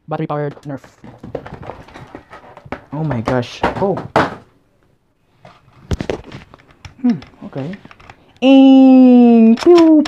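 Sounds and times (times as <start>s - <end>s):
plastic toy clicks and knocks: 9.3s - 10.0s.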